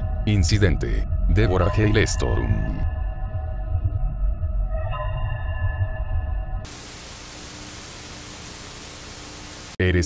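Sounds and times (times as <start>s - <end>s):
eerie ambient music: 0.0s - 6.7s
tv static hiss: 6.7s - 10.0s.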